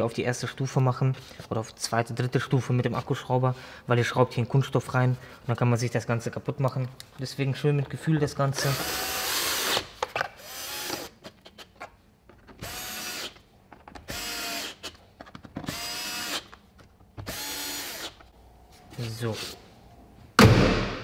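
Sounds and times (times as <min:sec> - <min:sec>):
cordless drill driving screws: 0:08.6 - 0:09.8, 0:10.4 - 0:11.1, 0:12.6 - 0:13.4, 0:14.1 - 0:14.9, 0:15.6 - 0:16.5, 0:17.2 - 0:18.2.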